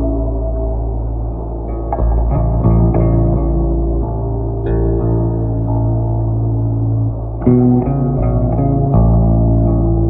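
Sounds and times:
low bass drone: 0.0 - 10.0
plucked notes: 0.0 - 10.0.

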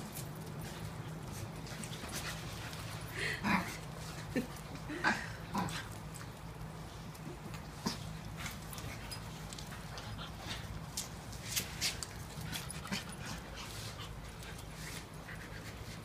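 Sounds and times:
dogs scuffling: 0.0 - 5.0, 5.6 - 16.0
low steady hum: 0.0 - 16.0.

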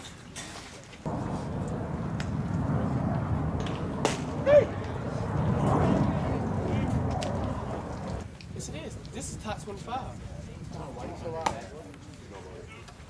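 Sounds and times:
wind rumbling on microphone: 1.0 - 13.0
person shouting a call: 4.4 - 4.8.

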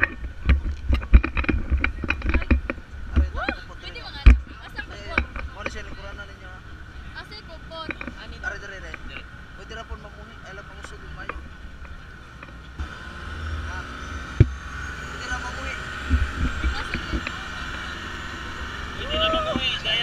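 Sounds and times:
boat motor running: 0.0 - 20.0
wind buffeting microphone: 15.8 - 20.0.

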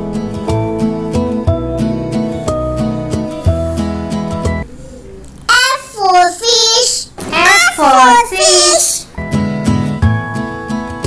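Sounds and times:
plucked acoustic guitar music: 0.0 - 4.6, 9.2 - 11.0
child calling sing-song: 5.5 - 9.1.

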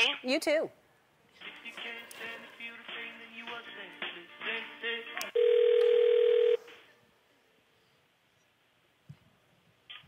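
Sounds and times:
phone line click: 5.4 - 6.6
telephone ringback tone: 5.4 - 6.7.

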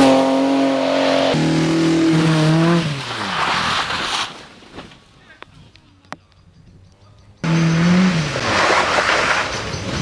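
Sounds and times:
rally car engine: 0.0 - 4.2, 7.4 - 10.0
tyres rushing on gravel: 2.6 - 5.3, 8.3 - 10.0.

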